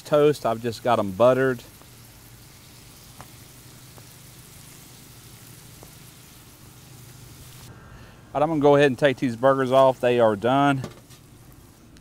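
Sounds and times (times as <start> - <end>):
burgers sizzling on a griddle: 0.0 - 7.7, 8.6 - 12.0.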